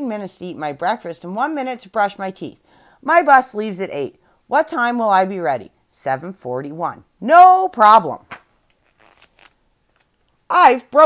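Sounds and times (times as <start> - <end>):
book page turning: 8.3 - 10.4.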